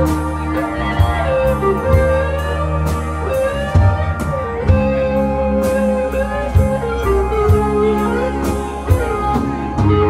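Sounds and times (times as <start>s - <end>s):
bass: 0.0s - 10.0s
keyboard and organ chords: 0.0s - 10.0s.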